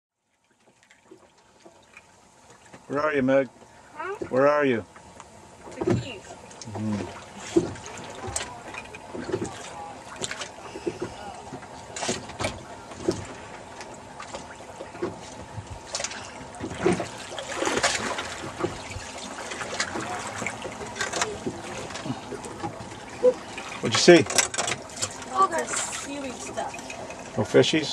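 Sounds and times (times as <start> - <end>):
water lapping against boat hull: 0.2 - 27.9.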